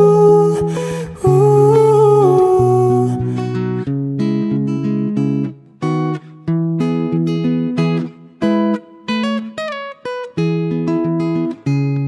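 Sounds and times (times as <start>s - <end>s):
man singing wordless ooh: 0.0s - 3.5s
acoustic guitar: 0.0s - 12.0s.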